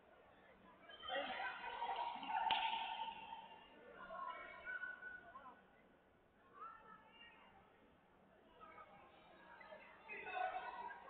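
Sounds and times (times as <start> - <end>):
sharp slap crack: 2.5 - 3.0.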